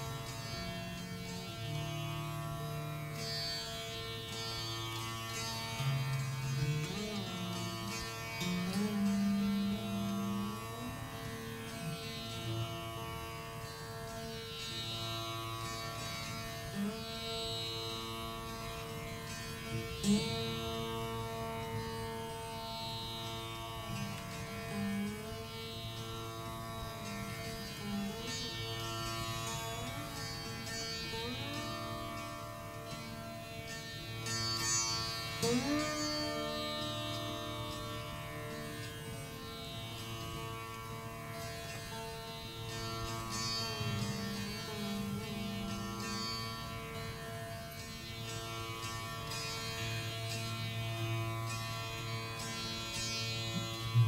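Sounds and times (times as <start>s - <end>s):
veena sustained notes: 0.0s - 54.0s.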